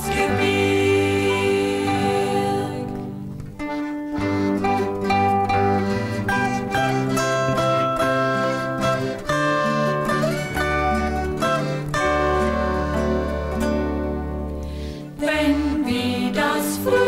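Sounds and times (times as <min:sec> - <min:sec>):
plucked string band playing folk tune: 0:00.0 - 0:17.0.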